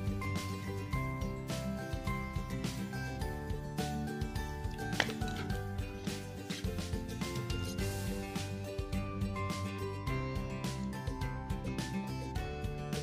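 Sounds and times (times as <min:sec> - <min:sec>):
instrumental music with beat: 0:00.0 - 0:13.0.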